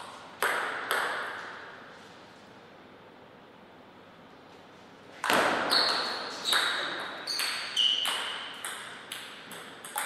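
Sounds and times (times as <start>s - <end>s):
table tennis ball hits: 0.0s - 1.6s, 5.2s - 10.0s.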